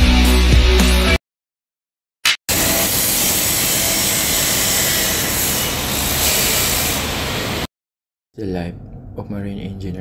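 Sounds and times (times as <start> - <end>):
chop saw grinding metal: 2.5 - 7.2.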